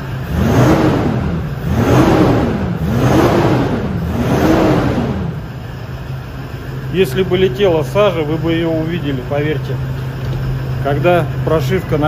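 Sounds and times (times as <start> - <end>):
diesel engine revving: 0.0 - 12.0.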